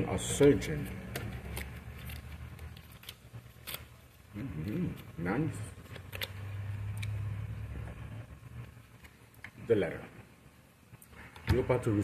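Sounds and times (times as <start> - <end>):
cards being shuffled: 0.2 - 7.3.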